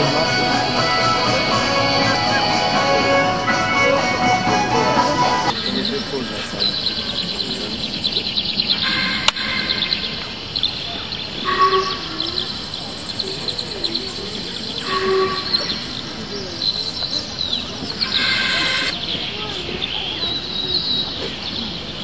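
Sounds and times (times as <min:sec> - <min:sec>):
short held chords: 0:00.0 - 0:06.7
crackly high ambience: 0:00.0 - 0:22.0
crowd voices: 0:00.0 - 0:22.0.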